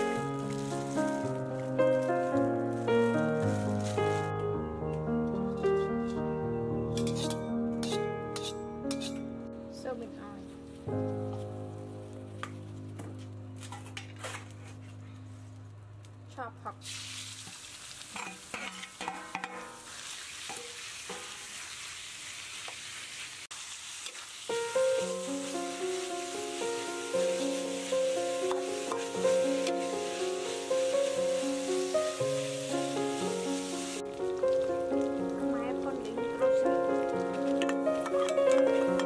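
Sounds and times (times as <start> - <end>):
meat sizzling in hot oil: 0.0 - 4.3, 16.8 - 39.0
light plucked music: 0.0 - 16.7, 24.5 - 39.0
spatula stirring in wok: 7.0 - 9.2, 17.4 - 24.4, 37.5 - 39.0.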